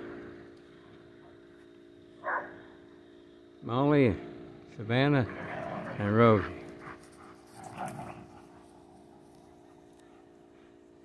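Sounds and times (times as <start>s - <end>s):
dog panting: 6.3s - 10.9s.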